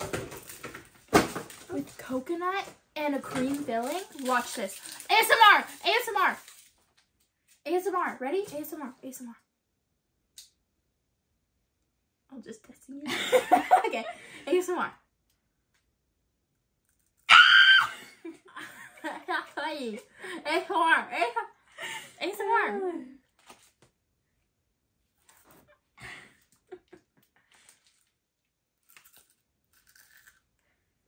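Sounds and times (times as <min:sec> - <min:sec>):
candy crunching while chewing: 0:03.5 - 0:07.2, 0:16.6 - 0:17.3, 0:27.5 - 0:30.9.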